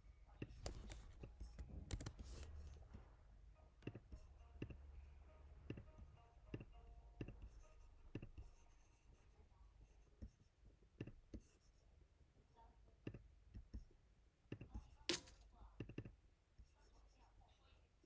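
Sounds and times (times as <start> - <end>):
computer mouse clicks: 0.4 - 2.8, 5.7 - 8.6, 14.5 - 16.2.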